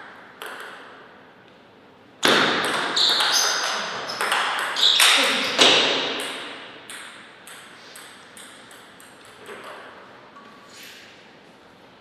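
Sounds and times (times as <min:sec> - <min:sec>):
paddles hitting table tennis ball: 0:00.0 - 0:01.1, 0:02.2 - 0:10.0
ball bouncing on table: 0:00.4 - 0:00.8, 0:02.2 - 0:09.8.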